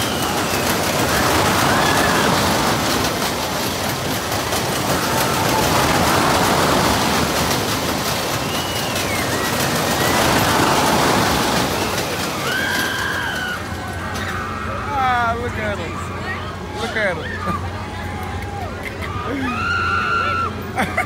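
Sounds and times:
fairground ride rushing rumble: 0.0s - 21.0s.

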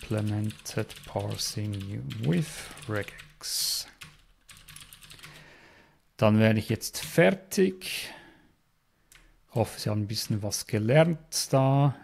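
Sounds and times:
typing on computer keyboard: 0.0s - 5.4s.

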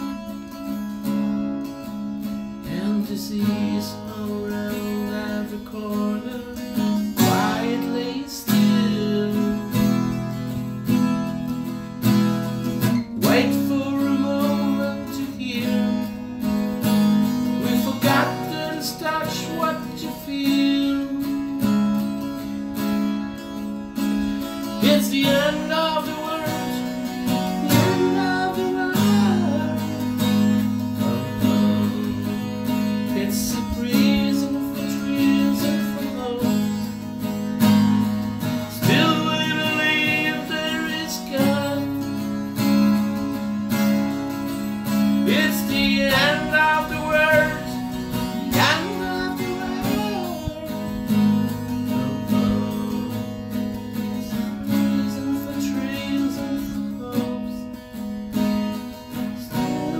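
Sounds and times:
acoustic guitar strummed and picked: 0.0s - 59.9s.

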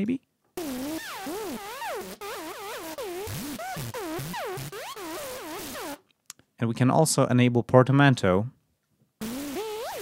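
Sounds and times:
synthesizer notes swooping in pitch: 0.6s - 6.0s, 9.2s - 10.0s.

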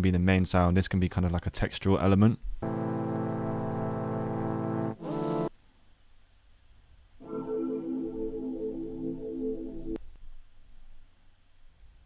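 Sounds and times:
synth pad chord: 2.6s - 5.5s, 7.2s - 10.0s
synth sound with sliding pitches: 7.2s - 10.0s.

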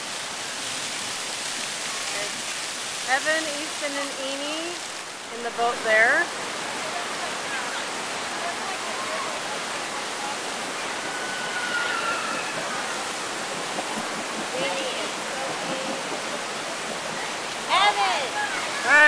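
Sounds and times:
white water rushing: 0.0s - 19.0s.

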